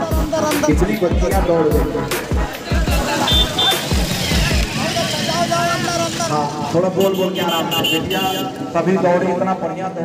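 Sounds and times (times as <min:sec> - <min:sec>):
heavy bass beats of music: 0:00.0 - 0:04.8
crowd: 0:00.0 - 0:10.0.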